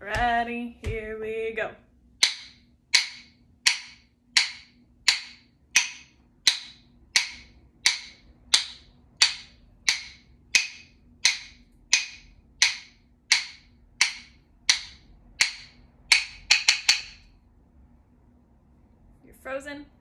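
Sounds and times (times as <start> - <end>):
rhythm sticks struck together: 0.0 - 1.3, 2.2 - 17.3.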